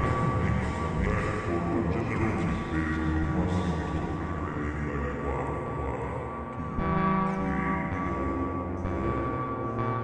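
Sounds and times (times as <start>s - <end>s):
synthesizer drone: 0.0s - 10.0s.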